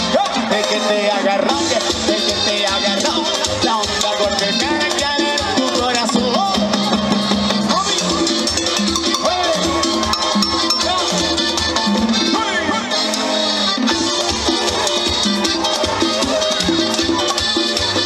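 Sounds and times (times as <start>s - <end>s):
band playing dance beat: 0.0s - 18.0s
congas: 0.0s - 18.0s
electric bass: 0.0s - 18.0s.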